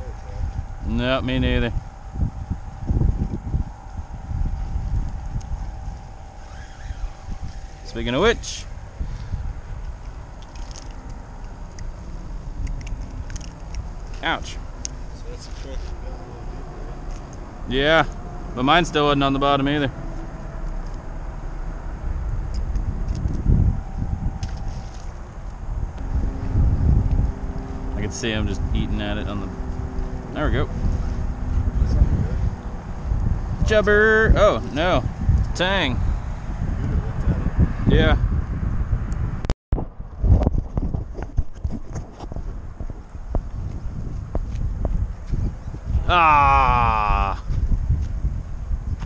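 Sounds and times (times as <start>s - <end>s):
faint motor hum: 0.0s - 37.0s
wind buffeting microphone: 0.0s - 49.0s.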